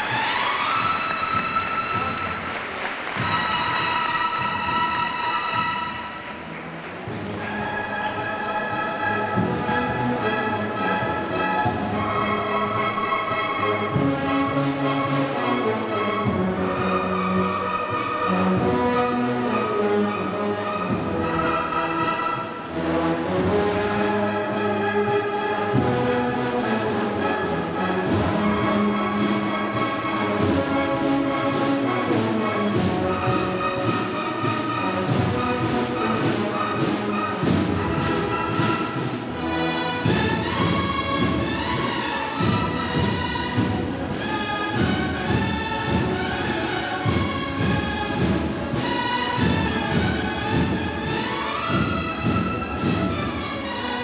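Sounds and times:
cornet and drum band playing: 0.0s - 54.0s.

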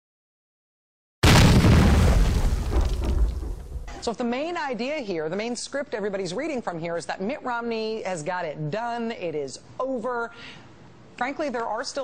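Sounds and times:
deep boom: 1.2s - 4.0s.

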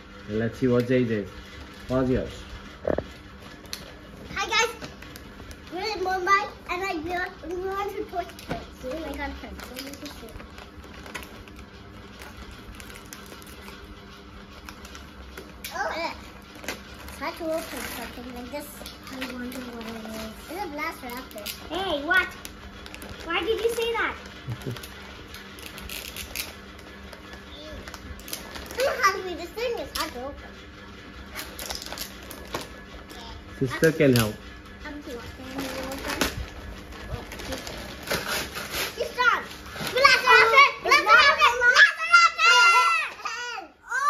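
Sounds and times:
wrapping paper crinkling: 3.3s - 30.2s, 31.2s - 34.4s, 35.1s - 41.5s.

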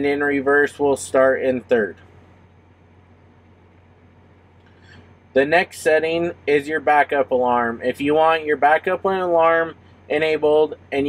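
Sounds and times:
background hiss: 0.0s - 11.0s
faint low hum: 0.0s - 11.0s.

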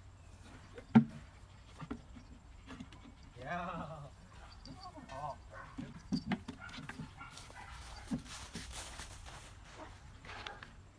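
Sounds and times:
rustling in grass: 7.0s - 10.7s.

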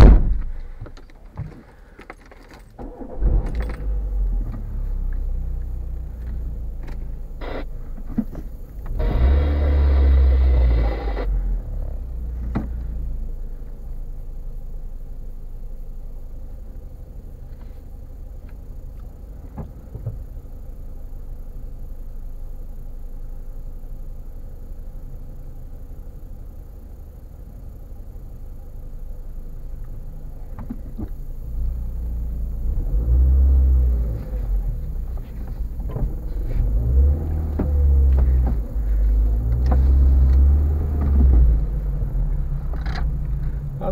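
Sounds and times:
car engine idling: 0.0s - 43.9s.

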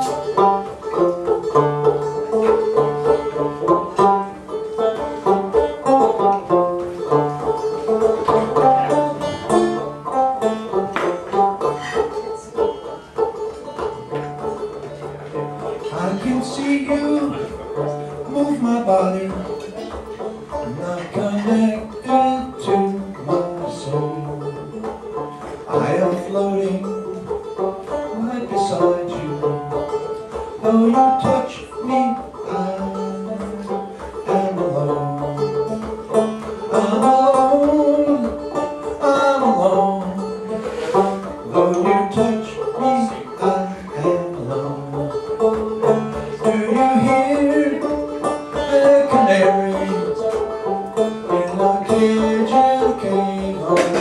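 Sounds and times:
banjo accompaniment: 0.0s - 54.0s
man singing sliding notes: 15.6s - 35.8s, 36.6s - 54.0s.

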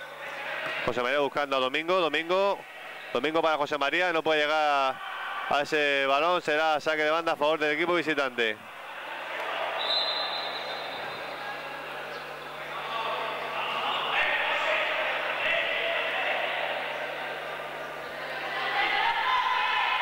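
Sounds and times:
voices calling out: 8.6s - 20.0s.

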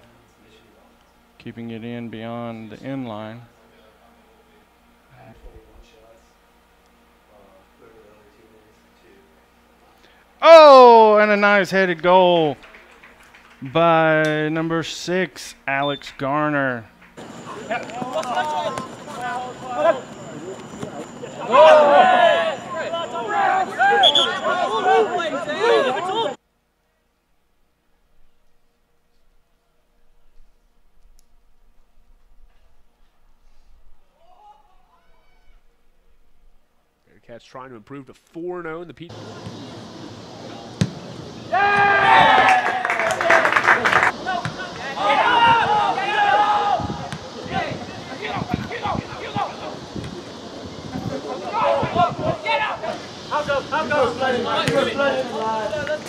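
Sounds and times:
person speaking or calling out: 10.4s - 11.8s
voices calling out: 10.4s - 12.6s, 17.2s - 26.4s, 39.1s - 56.0s.

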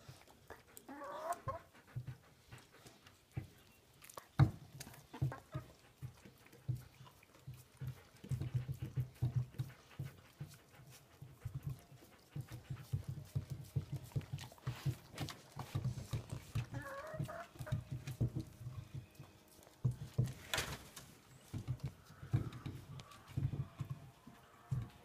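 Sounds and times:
dogs licking and gnawing ice: 2.6s - 20.4s.

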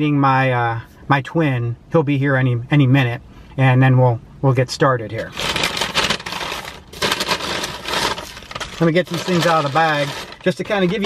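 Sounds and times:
paper wrapper rustling and crinkling: 5.2s - 11.0s.

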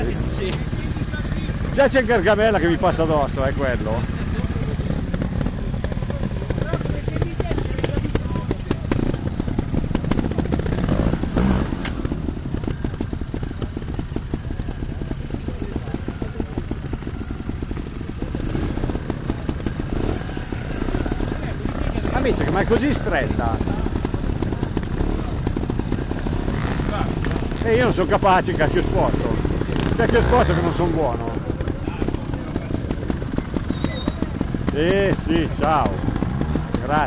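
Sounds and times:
motorcycle engine running: 0.0s - 37.0s.

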